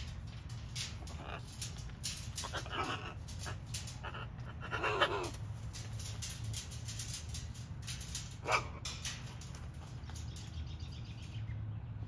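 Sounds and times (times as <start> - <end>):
parrot raspy grumbles: 0.9 - 5.5.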